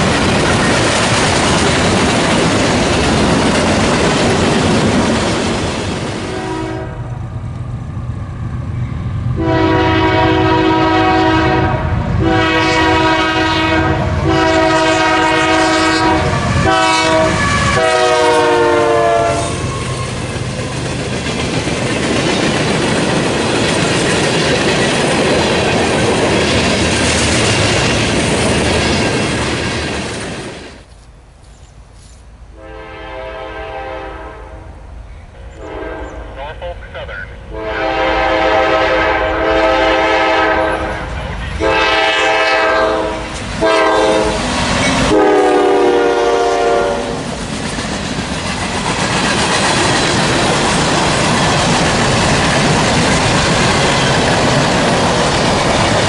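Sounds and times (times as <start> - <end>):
train wheel clatter: 0.0 - 6.3, 19.5 - 32.2, 46.4 - 56.0
train rumbling by: 0.0 - 56.0
locomotive air horn blasts: 6.3 - 7.1, 9.4 - 19.6, 32.6 - 34.7, 35.6 - 36.4, 37.5 - 40.9, 41.6 - 44.4, 45.0 - 47.2.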